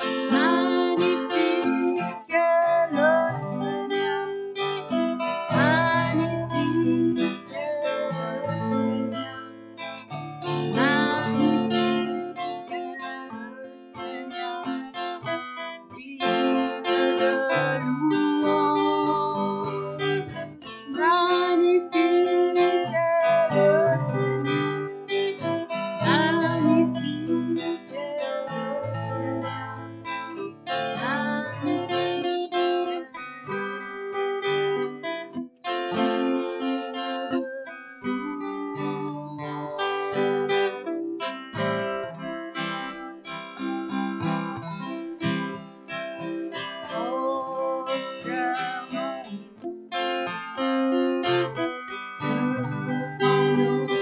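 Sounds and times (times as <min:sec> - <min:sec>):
woman singing: 0:00.0 - 0:09.3, 0:10.4 - 0:34.9, 0:35.8 - 0:42.0, 0:46.2 - 0:50.3
acoustic guitar strumming chords: 0:00.0 - 0:54.0.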